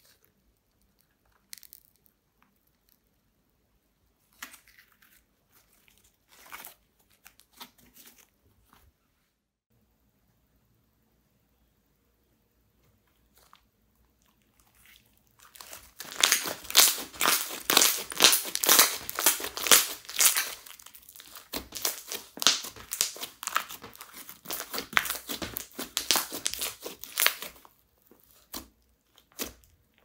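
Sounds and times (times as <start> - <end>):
slime crackling and popping: 14.6 - 30.0.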